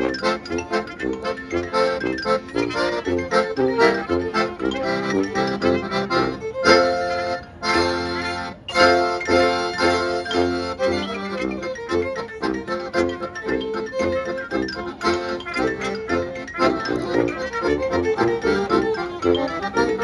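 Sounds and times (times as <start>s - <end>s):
accordion: 0.0s - 20.0s.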